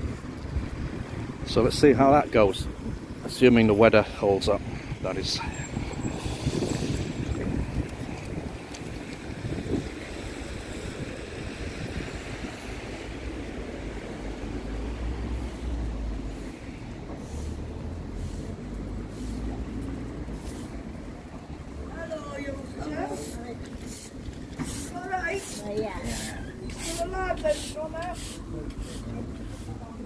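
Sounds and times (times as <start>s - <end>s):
wind buffeting the microphone: 0.0s - 19.0s
low rumble of traffic: 0.0s - 30.0s.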